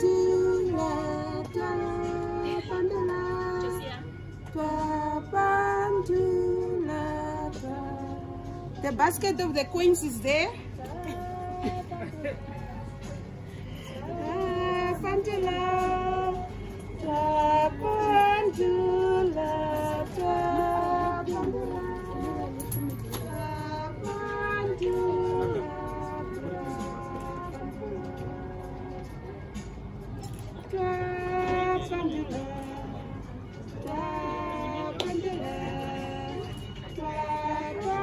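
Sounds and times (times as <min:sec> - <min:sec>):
high voices singing: 0:00.0 - 0:09.0, 0:10.0 - 0:29.6, 0:30.5 - 0:38.0.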